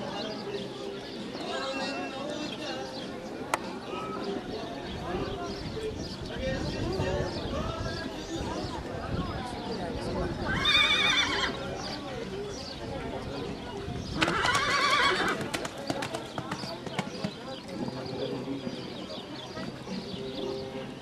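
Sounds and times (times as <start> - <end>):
voices talking: 0.0 - 21.0
horse whinnying: 10.5 - 11.6, 14.2 - 15.4.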